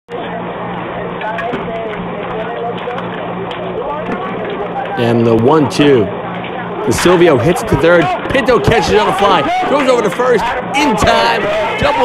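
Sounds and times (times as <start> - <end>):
faint indistinct voices: 0.1 - 12.0
steady low hum: 0.1 - 12.0.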